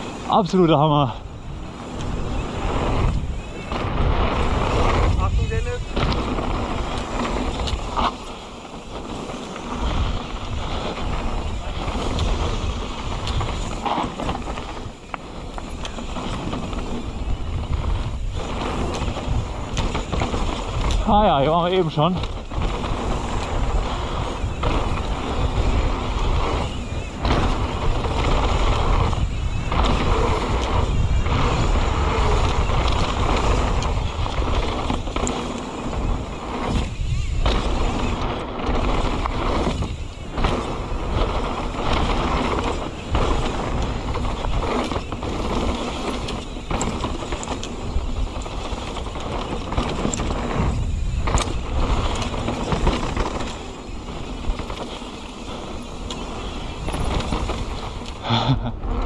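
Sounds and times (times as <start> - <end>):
bike rattling: 0.0 - 59.0
tyres rolling on dirt: 0.0 - 59.0
wind rushing over microphone: 0.0 - 59.0.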